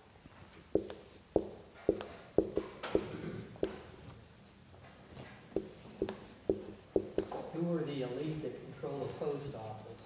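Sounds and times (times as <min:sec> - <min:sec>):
marker writing on a whiteboard: 0:00.6 - 0:04.3, 0:04.9 - 0:09.8
marker tapping on whiteboard: 0:00.7 - 0:04.0, 0:05.5 - 0:07.6.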